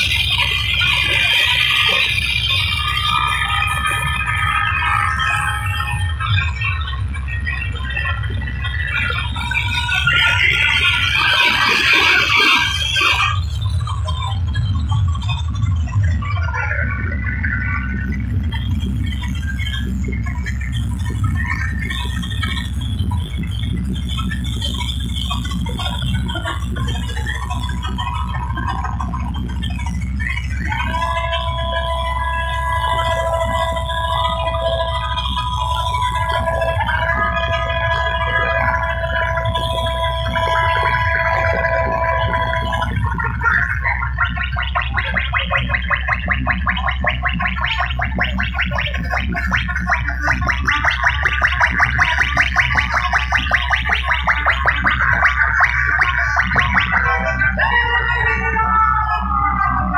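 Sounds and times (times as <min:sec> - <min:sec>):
fast pulsing stutter: 0:00.0 - 0:16.3, 0:16.9 - 0:59.9
electronic dance music: 0:00.0 - 0:59.9
held synth notes: 0:17.9 - 0:59.9.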